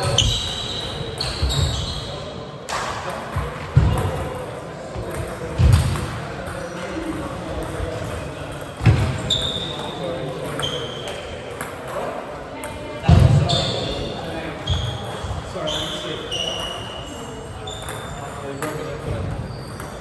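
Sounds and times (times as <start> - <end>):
murmur of chatter: 0.0 - 20.0.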